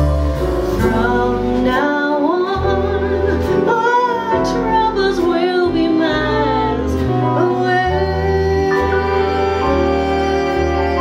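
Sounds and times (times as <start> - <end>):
big band music: 0.0 - 11.0
woman singing: 0.8 - 11.0.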